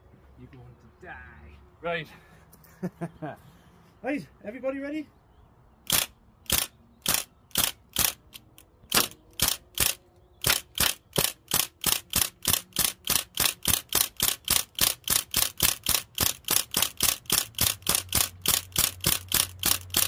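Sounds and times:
bb gun firing: 5.9s - 20.0s.

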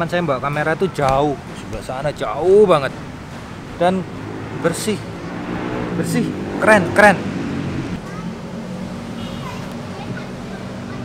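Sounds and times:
distant road traffic rumble: 0.0s - 11.0s.

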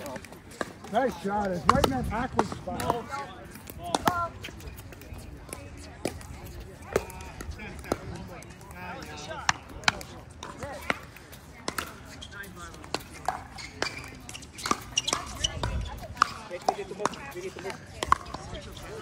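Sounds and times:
paddles hitting plastic ball: 0.0s - 6.3s
faint voices: 0.0s - 19.0s
ball bouncing on hard court: 1.4s - 3.1s, 12.7s - 19.0s.

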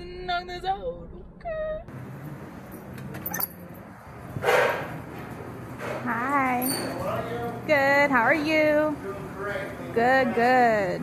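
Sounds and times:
restaurant room noise: 0.0s - 11.0s.

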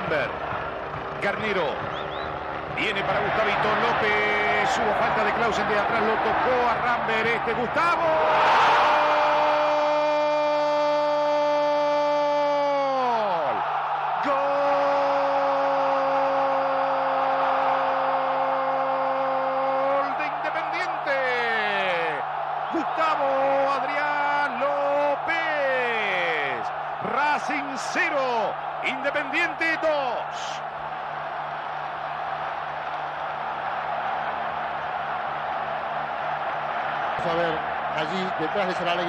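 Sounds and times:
crowd noise: 15.5s - 39.0s.

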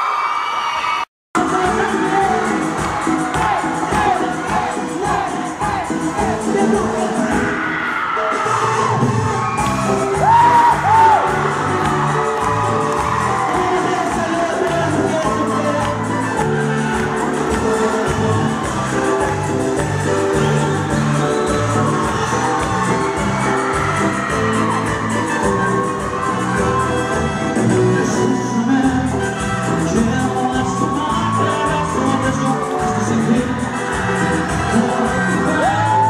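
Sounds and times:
people whooping: 0.0s - 6.0s, 7.5s - 28.7s, 30.1s - 36.0s.

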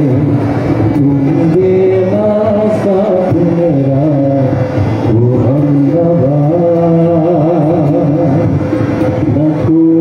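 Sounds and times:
tabla: 0.0s - 10.0s
man singing: 1.0s - 8.6s, 9.3s - 10.0s.

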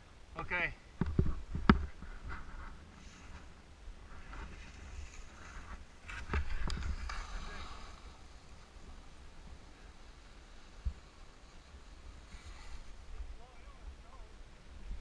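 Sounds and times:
wind rumble on microphone: 1.0s - 15.0s
skis scraping over snow: 2.0s - 13.5s.

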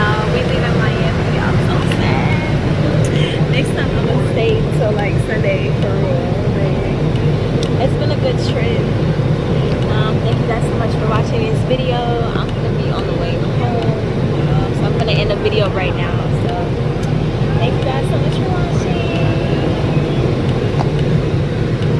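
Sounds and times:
airliner cabin rumble: 0.0s - 21.9s
voices talking: 0.0s - 21.9s.

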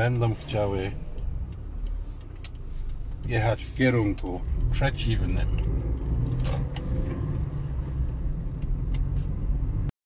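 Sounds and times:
faint ticks: 0.2s - 6.4s.

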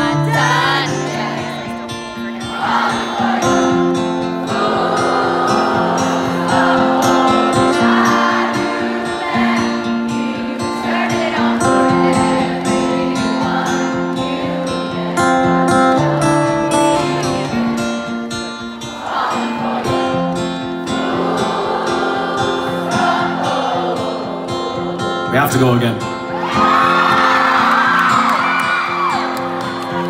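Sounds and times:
audience singing: 0.0s - 25.3s, 26.2s - 30.0s
acoustic guitar strumming: 0.0s - 30.0s.

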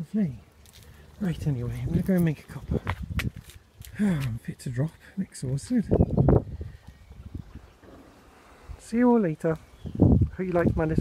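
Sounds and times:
outdoor background: 0.0s - 11.0s.

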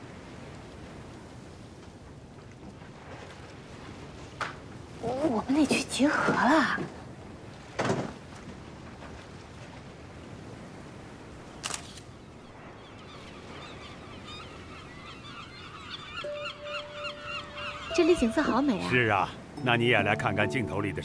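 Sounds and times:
seagulls calling: 12.2s - 21.0s.

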